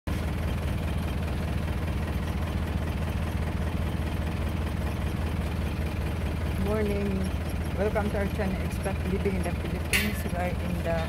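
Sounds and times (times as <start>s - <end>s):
car engine idling: 0.1s - 11.0s.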